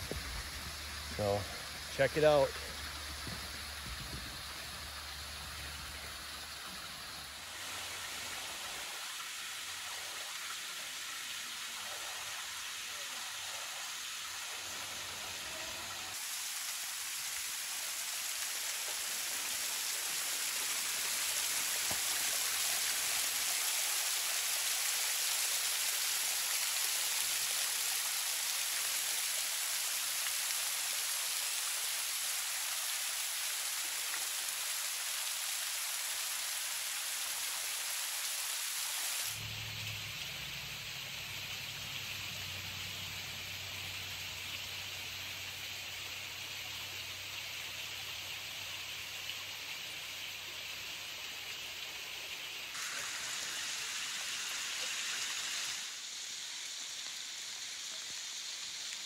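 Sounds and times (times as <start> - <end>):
waterfall splashing on rock: 0.0 - 39.4, 52.7 - 59.0.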